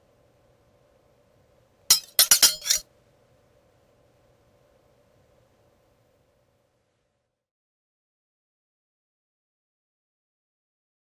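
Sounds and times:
glass clinking: 0:01.9 - 0:02.8.

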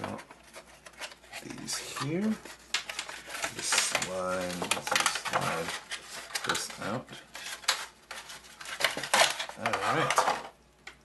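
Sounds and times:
cables rustling in foam packaging: 0:00.0 - 0:10.5.

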